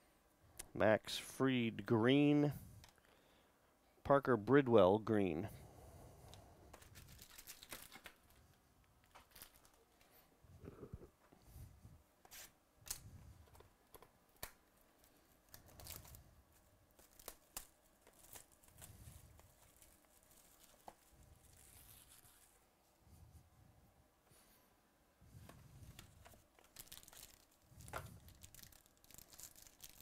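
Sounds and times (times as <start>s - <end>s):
plastic wrap crinkling and tearing: 6.8s - 8.4s, 9.0s - 9.8s, 14.9s - 22.6s, 25.8s - 30.0s.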